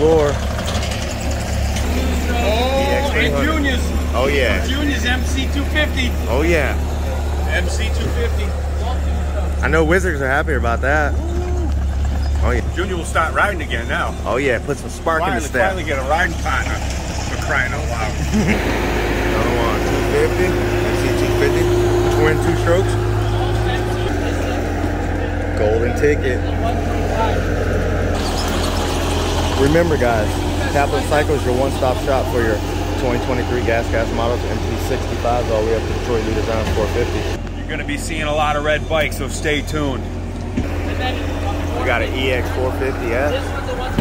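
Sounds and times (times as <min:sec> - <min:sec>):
man talking: 0:00.0 - 0:00.4, 0:01.8 - 0:11.4, 0:12.3 - 0:27.6, 0:29.6 - 0:40.1, 0:41.5 - 0:44.0
diesel engine idling: 0:00.0 - 0:44.0.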